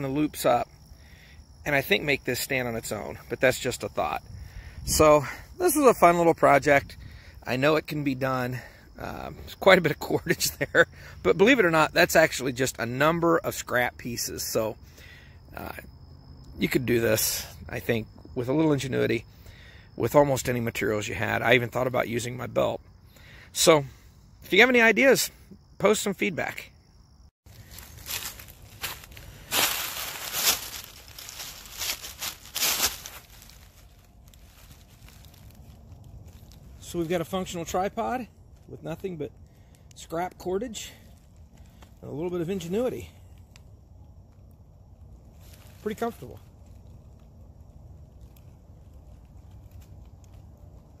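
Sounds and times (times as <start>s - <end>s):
dry leaves crunching underfoot: 27.5s - 39.0s, 45.3s - 46.8s.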